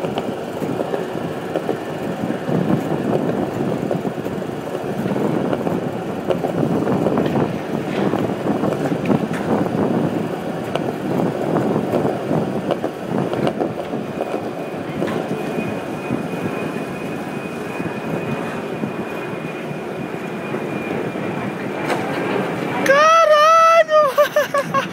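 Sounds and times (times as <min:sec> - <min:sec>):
skateboard wheels rolling on concrete: 0:00.0 - 0:24.9.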